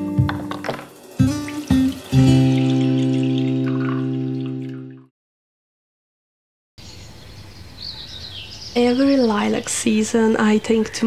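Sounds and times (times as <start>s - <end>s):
strummed acoustic guitar chord: 0.0s - 4.4s
liquid trickling into a strainer: 1.2s - 5.1s.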